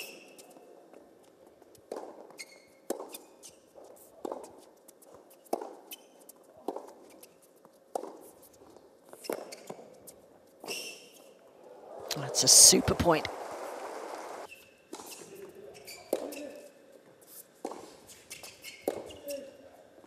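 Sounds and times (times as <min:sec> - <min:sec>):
shoe squeaks on court: 0:00.0 - 0:00.7, 0:01.7 - 0:11.4, 0:14.5 - 0:19.6.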